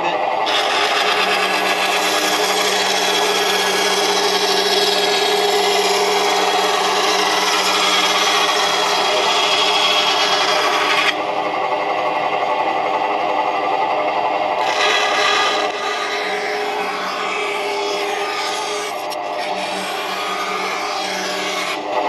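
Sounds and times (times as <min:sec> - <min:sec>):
bandsaw cutting wood: 0:00.0 - 0:11.2, 0:14.6 - 0:22.0
saw motor humming: 0:00.0 - 0:22.0.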